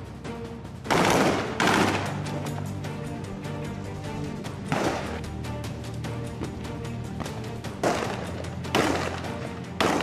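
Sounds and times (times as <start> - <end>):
background music: 0.0 - 10.0
rifle shots: 0.9 - 2.2, 7.8 - 10.0.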